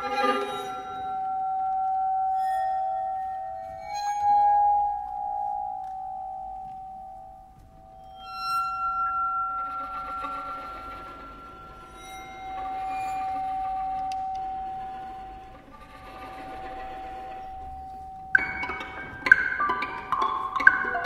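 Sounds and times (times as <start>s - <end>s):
bowed strings holding high tones: 0.0s - 21.0s
bright ringing tone: 0.1s - 21.0s.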